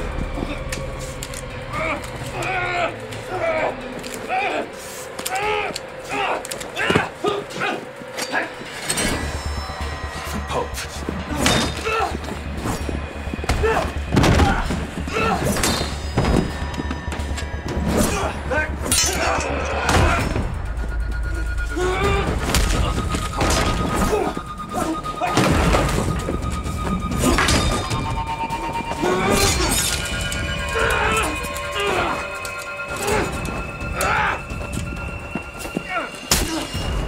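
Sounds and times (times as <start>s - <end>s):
low music drone: 0.0s - 37.0s.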